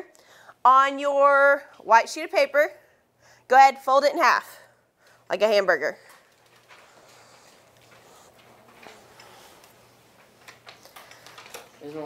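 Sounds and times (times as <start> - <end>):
paper rustling: 6.1 - 12.0
paper folding ticks and taps: 7.5 - 11.8.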